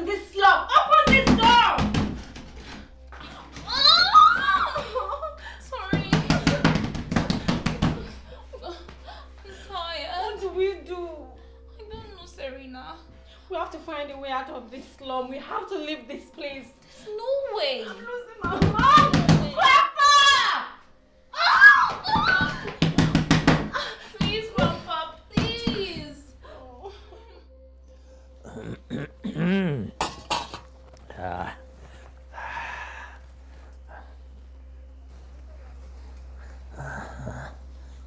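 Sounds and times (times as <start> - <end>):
woman crying and wailing: 3.3 - 6.7, 8.0 - 10.3, 23.7 - 27.6
hands banging on door: 22.1 - 24.8.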